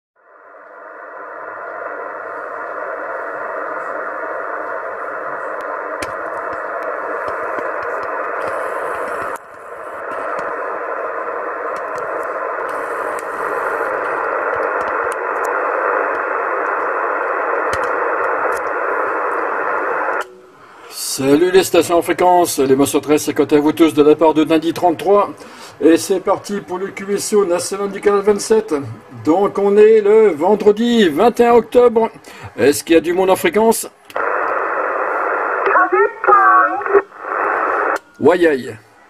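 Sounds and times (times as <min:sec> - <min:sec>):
radio static hiss: 0:00.3 - 0:39.0
faint radio crackles: 0:00.6 - 0:20.3, 0:33.8 - 0:38.3.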